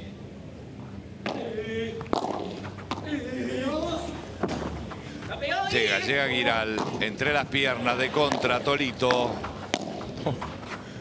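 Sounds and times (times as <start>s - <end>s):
voices: 1.2s - 10.6s
racket striking ball: 2.1s - 3.1s, 4.4s - 5.4s, 6.7s - 7.2s, 8.2s - 10.2s.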